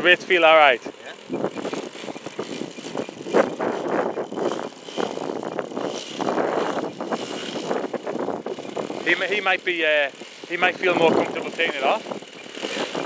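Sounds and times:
model plane engine and propeller: 0.0s - 13.0s.

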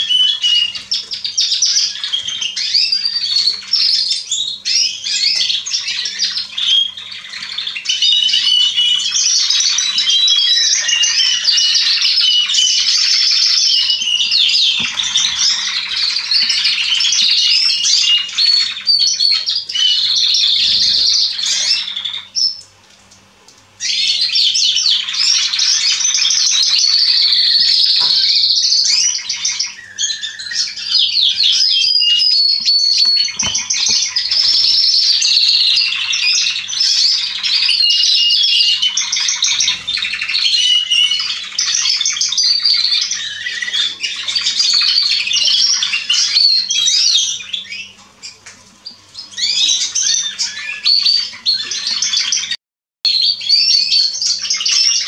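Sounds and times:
canary singing: 0.0s - 55.0s.

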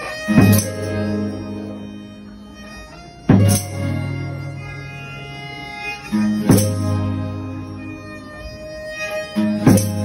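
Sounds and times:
band playing held chords: 0.0s - 10.0s
plucked guitars: 0.0s - 10.0s.

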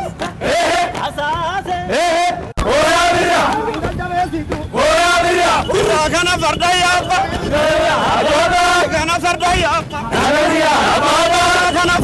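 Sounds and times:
men chanting and shouting: 0.0s - 12.0s.

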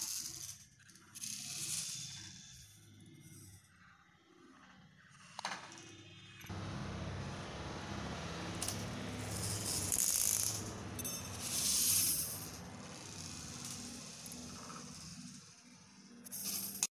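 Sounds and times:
faint low hum: 6.5s - 15.3s.

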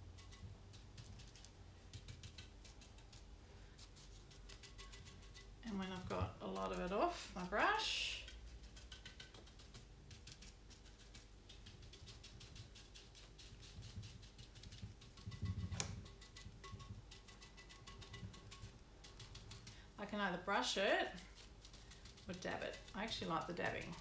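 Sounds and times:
low steady hum: 0.0s - 24.0s
paintbrush tapping: 0.1s - 3.3s, 8.2s - 19.8s.

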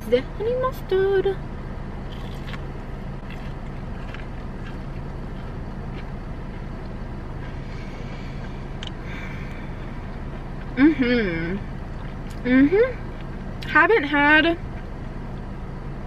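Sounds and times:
car engine idling: 0.0s - 16.0s
person chewing crunchy food: 2.0s - 10.8s, 11.6s - 12.4s.

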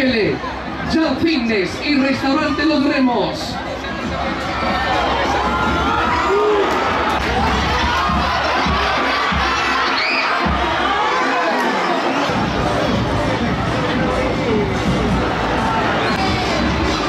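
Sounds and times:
stadium crowd cheering and shouting: 0.0s - 17.0s.

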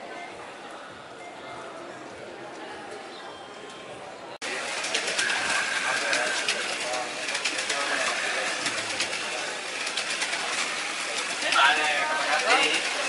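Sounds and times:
people talking: 0.0s - 13.0s
slot cars whirring: 4.4s - 13.0s.

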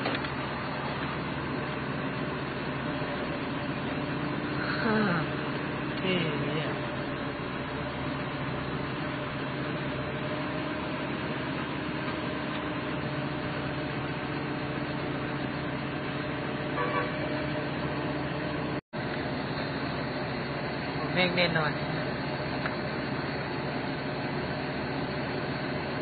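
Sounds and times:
engine hum: 0.0s - 26.0s.

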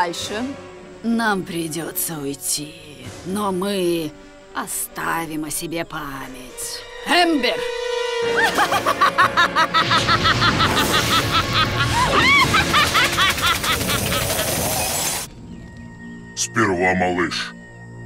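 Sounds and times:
dramatic music: 0.0s - 18.0s
cartoon flame rush: 9.8s - 15.3s.

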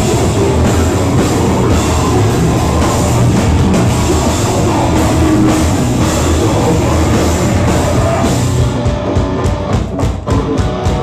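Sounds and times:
distorted electric guitars: 0.0s - 11.0s
pounding drum kit: 0.0s - 11.0s.

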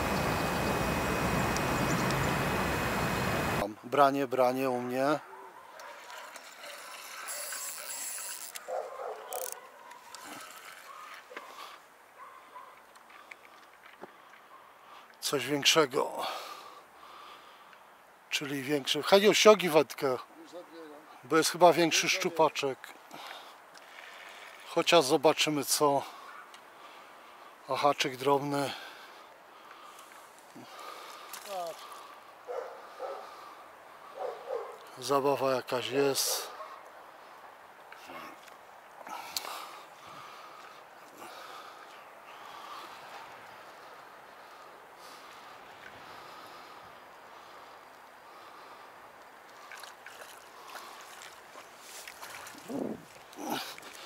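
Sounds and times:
fishing reel whirring and clicking: 6.2s - 8.7s, 9.3s - 9.6s.

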